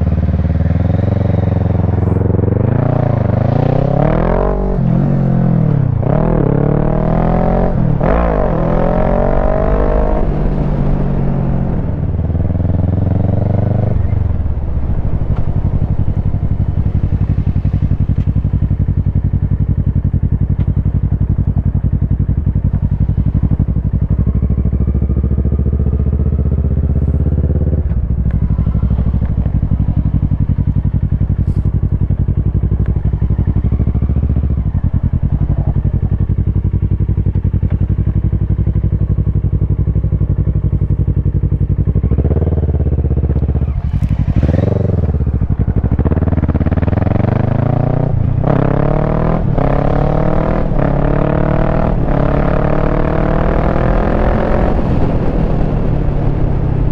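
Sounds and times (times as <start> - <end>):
motorcycle engine revving through gears: 0.0 - 56.9.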